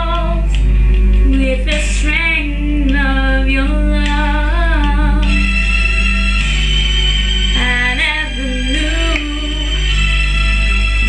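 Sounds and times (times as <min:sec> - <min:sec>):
woman singing a slow ballad: 0:00.0 - 0:05.5, 0:07.6 - 0:10.0.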